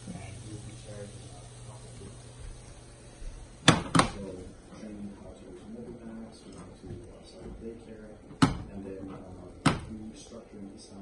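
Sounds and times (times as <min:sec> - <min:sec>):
frying pan knocking on glass hob: 0:03.2 - 0:04.4, 0:06.8 - 0:10.2.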